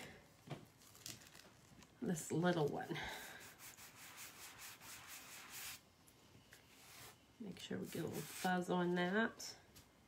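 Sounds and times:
rubbing on fabric towel: 3.4 - 5.8, 7.9 - 8.6.

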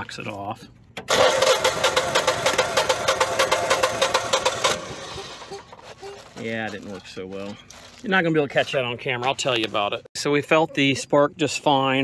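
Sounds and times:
generator engine cranking: 1.0 - 5.9.

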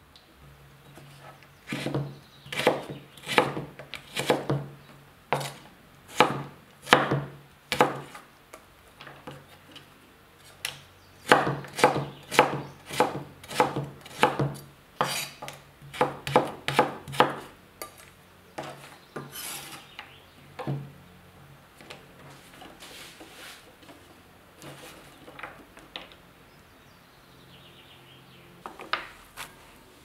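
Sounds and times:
scraping strips on board: 15.0 - 16.1, 18.6 - 19.9, 22.2 - 25.2
knife cutting on wooden board: 15.0 - 17.4.

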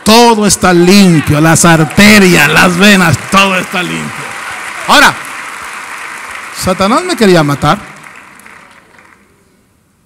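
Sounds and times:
congregation applause: 0.0 - 9.5.

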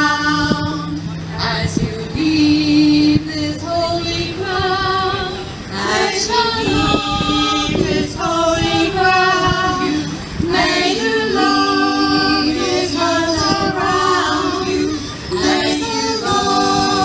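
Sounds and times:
women's choir singing a cappella: 0.0 - 17.0.

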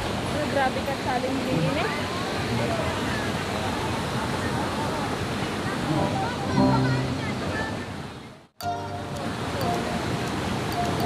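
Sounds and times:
stream rushing: 0.0 - 11.0
background music with held notes: 5.9 - 7.4, 8.6 - 11.0.

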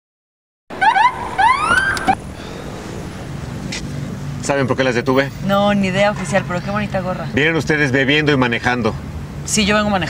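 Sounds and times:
police siren yelps: 0.7 - 3.2.

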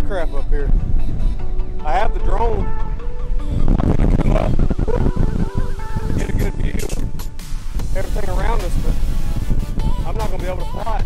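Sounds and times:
man talking: 0.0 - 0.7, 1.8 - 2.7, 3.8 - 4.6, 6.2 - 7.2, 7.8 - 9.1, 10.0 - 11.0
background music: 0.0 - 11.0
wind buffeting microphone: 0.0 - 11.0.

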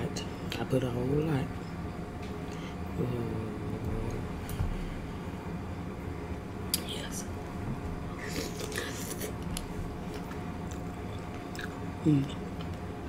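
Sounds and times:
chewing crunchy food: 8.2 - 12.8
wet mouth clicks: 11.5 - 11.8.

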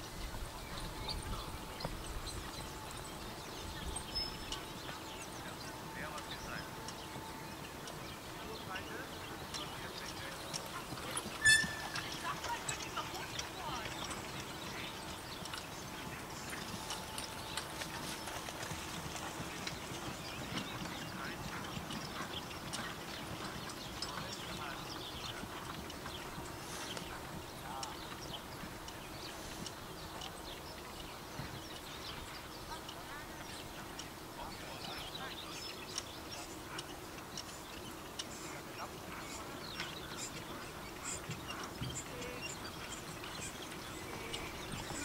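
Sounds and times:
horse hooves trotting on turf: 0.0 - 45.0.

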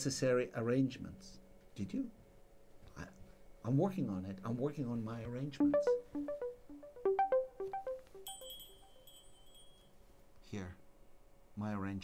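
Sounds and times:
keyboard melody: 5.6 - 9.1
high metallic chime: 7.0 - 9.9.

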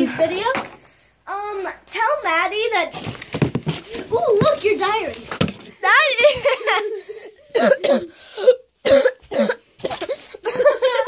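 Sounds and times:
person coughing: 7.5 - 11.0.

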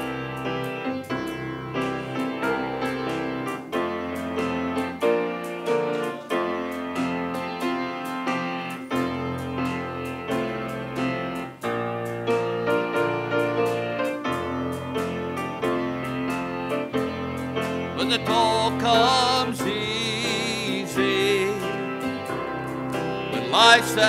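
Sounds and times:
slow piano piece: 0.0 - 24.0.

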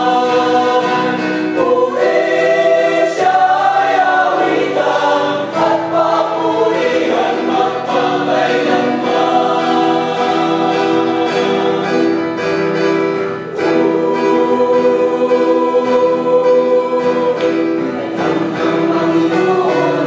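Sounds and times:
mixed choir singing: 0.0 - 20.0.

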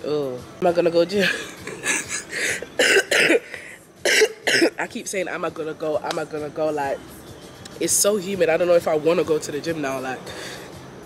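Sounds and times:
woman laughing: 1.1 - 2.8.

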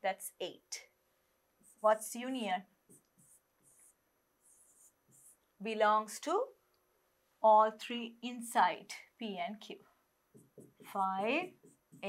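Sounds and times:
pen scratching on whiteboard screen: 1.6 - 5.5, 10.3 - 12.0.

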